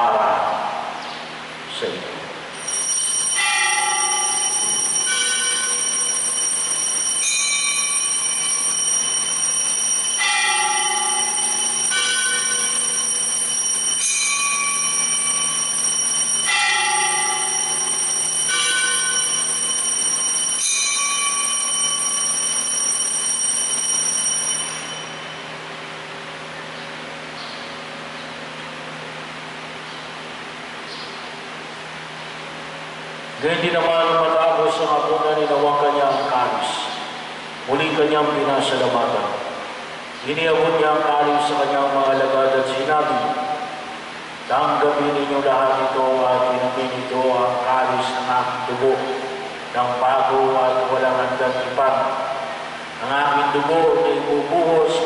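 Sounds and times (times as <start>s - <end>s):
altar bells ringing: 2.5s - 25.6s.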